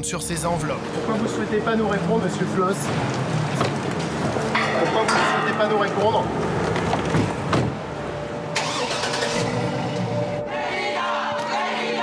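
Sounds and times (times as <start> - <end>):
car engine starting and running: 0.0 - 10.5
background music drone: 0.0 - 12.0.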